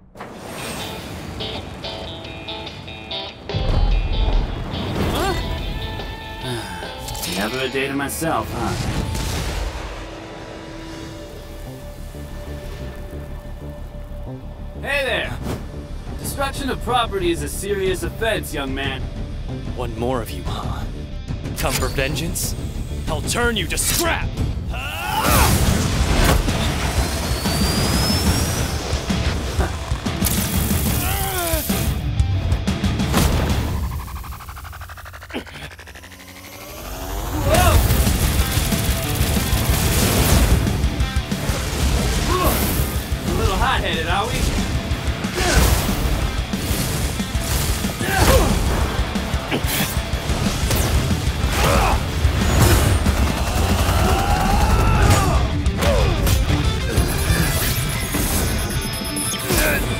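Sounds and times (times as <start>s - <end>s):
battle music: 0.0s - 59.9s.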